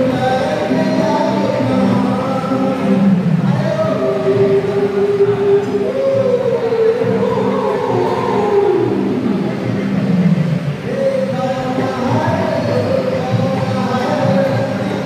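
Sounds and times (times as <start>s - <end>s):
man singing through a speaker: 0.0s - 15.0s.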